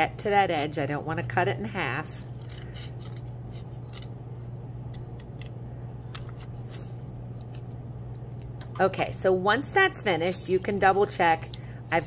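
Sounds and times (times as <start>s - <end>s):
steady low hum: 0.0s - 12.0s
scissors snipping paper: 2.2s - 4.1s.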